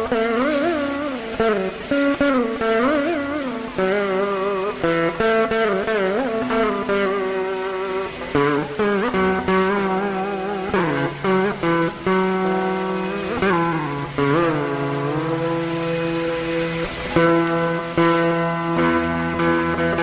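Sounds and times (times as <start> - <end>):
plucked veena music: 0.0 - 20.0.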